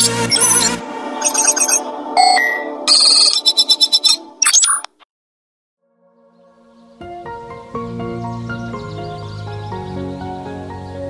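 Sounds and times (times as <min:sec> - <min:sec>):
chirping alert beeps: 0:00.0 - 0:04.9
electronic beep: 0:00.0 - 0:05.0.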